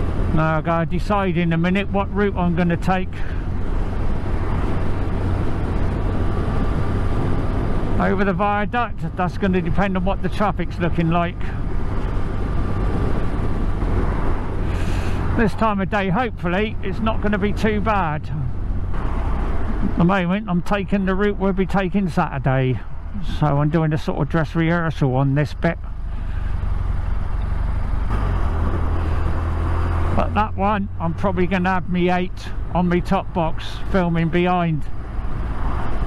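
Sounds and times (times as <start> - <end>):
motorcycle engine drone: 0.0 - 36.0
tyres on wet road: 0.0 - 36.0
wind noise: 2.3 - 16.0, 16.6 - 20.4.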